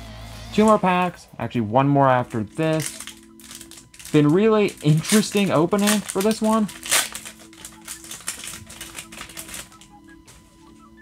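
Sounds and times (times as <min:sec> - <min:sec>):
foil wrapper crinkling: 0:02.2 - 0:10.4
cards rustling: 0:02.2 - 0:10.8.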